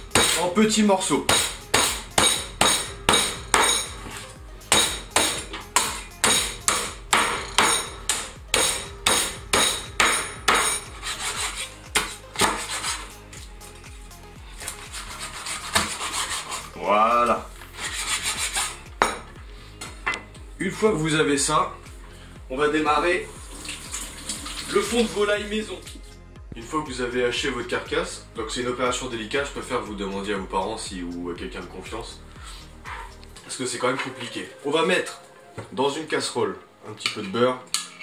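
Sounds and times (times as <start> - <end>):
cleaver chopping bones: 0.2 - 0.4, 1.3 - 3.9, 4.7 - 10.8
scraping and knocking on board: 9.6 - 13.1, 15.6 - 16.6.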